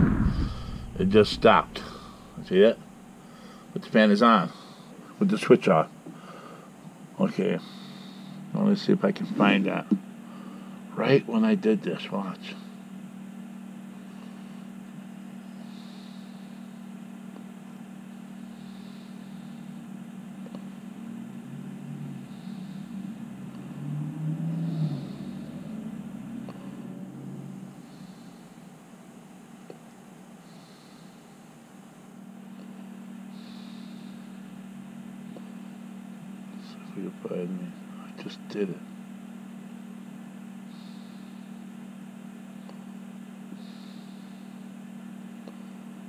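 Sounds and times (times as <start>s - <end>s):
fan humming: 0.0s - 46.0s.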